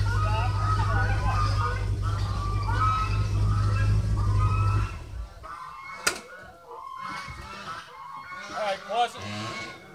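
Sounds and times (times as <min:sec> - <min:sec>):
truck engine running: 0:00.0 - 0:05.6.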